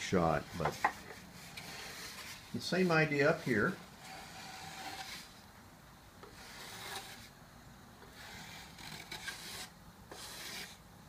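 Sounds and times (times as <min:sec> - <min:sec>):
hand plane shaving wood: 0:00.4 - 0:05.3, 0:06.2 - 0:07.3, 0:08.0 - 0:10.8.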